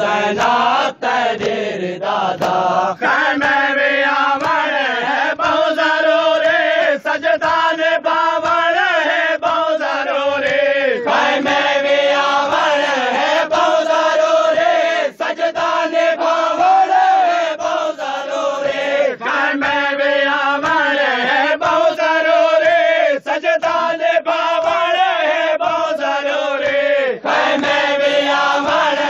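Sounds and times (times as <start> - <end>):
voices chanting a lament: 0.0 - 29.0
chest-beating slaps: 0.3 - 3.7, 4.4 - 4.7.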